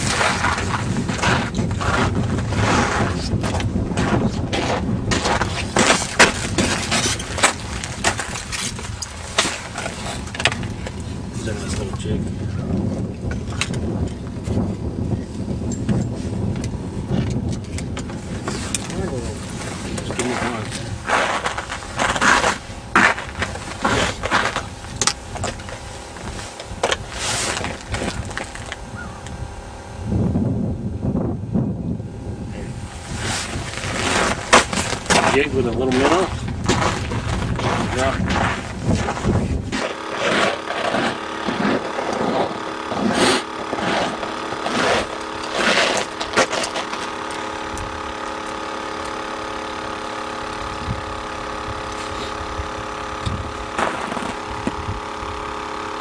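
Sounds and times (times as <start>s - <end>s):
wind buffeting microphone: 0.0s - 55.6s
man talking indistinctly: 35.2s - 36.3s, 37.9s - 38.2s.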